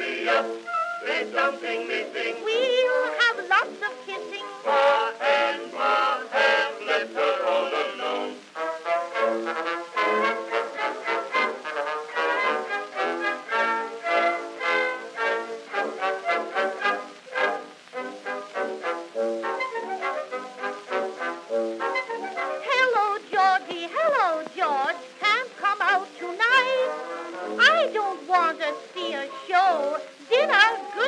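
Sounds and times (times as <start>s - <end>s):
orchestra playing: 2.9s - 22.7s.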